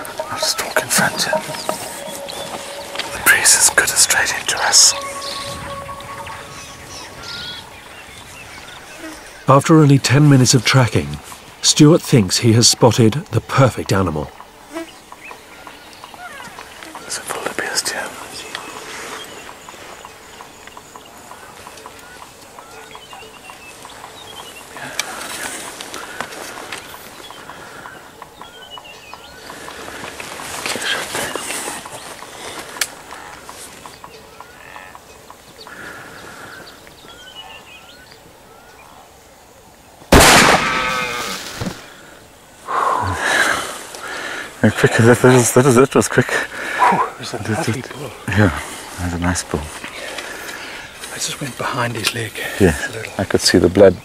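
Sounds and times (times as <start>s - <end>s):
small chirping calls: 0.0s - 9.4s
rifle shot: 40.1s - 41.6s.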